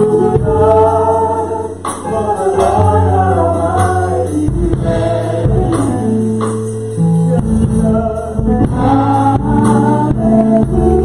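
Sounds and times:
women singing: 0.0 - 6.1, 7.3 - 11.0
man singing lead: 0.0 - 6.2, 7.0 - 11.0
sustained instrumental accompaniment: 0.0 - 11.0.

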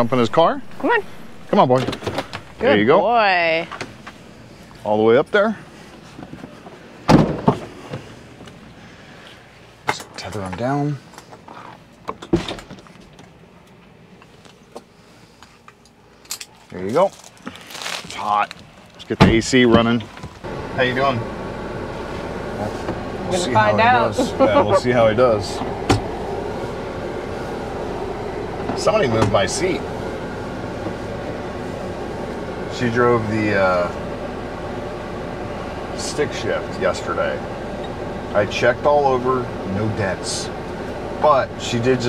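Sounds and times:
air conditioning hissing: 0.0 - 12.0, 12.7 - 42.0
engine idling hum: 0.0 - 42.0
car door shutting with thump: 7.1 - 8.1, 25.6 - 26.2.

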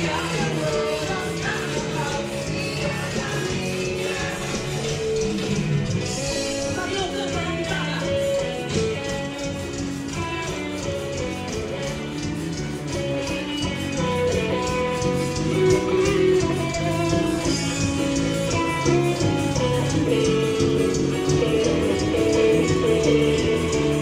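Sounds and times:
live band music with guitar: 0.0 - 24.0.

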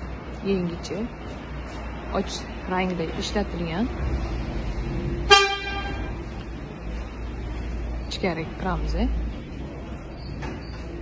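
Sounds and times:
vehicle horn toot: 5.3 - 6.2.

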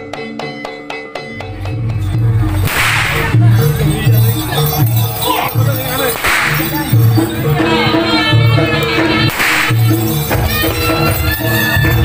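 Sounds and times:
whip crack: 2.6 - 3.4, 6.1 - 6.8, 9.3 - 9.9.

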